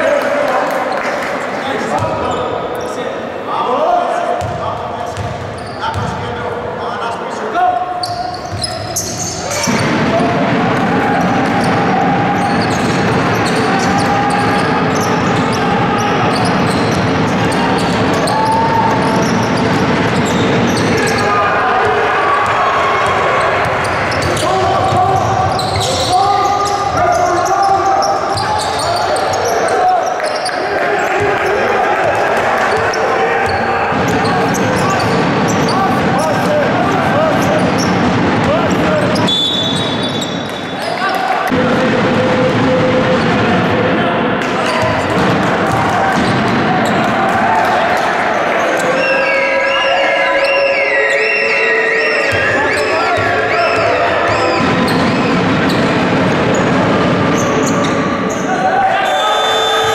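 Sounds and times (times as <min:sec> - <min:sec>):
basketball bouncing on court: 0:04.4 - 0:06.2, 0:31.1 - 0:36.5, 0:44.6 - 0:47.3
din of indistinct voices: 0:09.0 - 0:39.3, 0:40.8 - 0:59.9.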